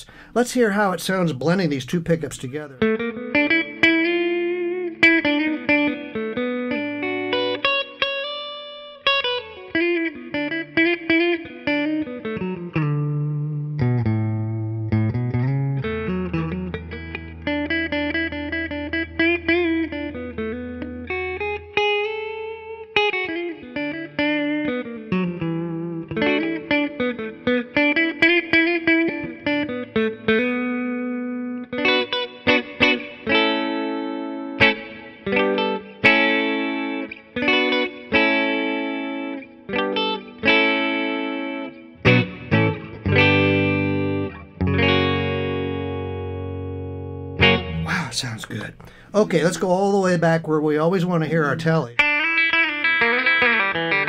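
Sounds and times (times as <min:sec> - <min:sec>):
electric guitar playing: 0:00.0 - 0:54.0.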